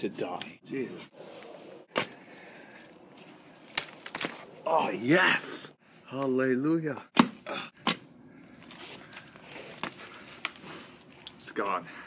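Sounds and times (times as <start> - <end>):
scraping and rustling of dirt: 0.9 - 4.7, 8.5 - 11.8
root cracking: 3.6 - 4.5.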